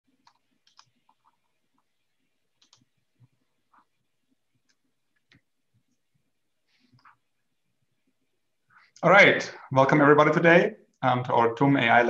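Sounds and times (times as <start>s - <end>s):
keyboard and mouse clicks: 0.1s - 1.9s, 2.6s - 3.9s.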